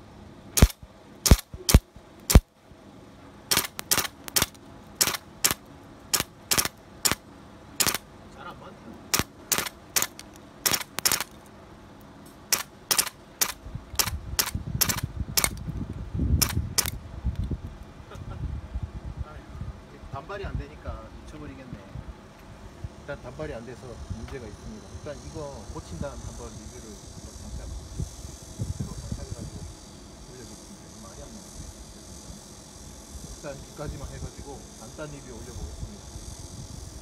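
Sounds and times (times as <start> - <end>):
airsoft rifle shots: 0.6 - 2.5, 3.5 - 7.2, 7.8 - 8.0, 9.1 - 11.4, 12.5 - 15.6, 16.4 - 17.0.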